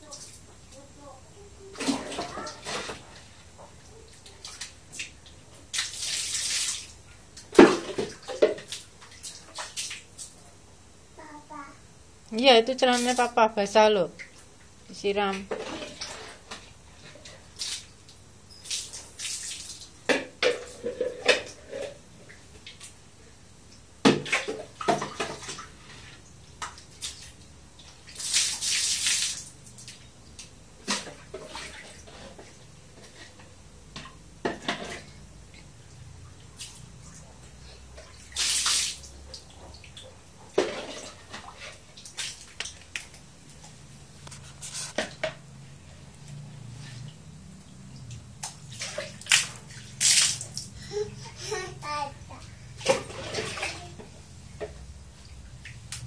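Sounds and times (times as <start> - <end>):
water splashing out: 52.8 - 54.0.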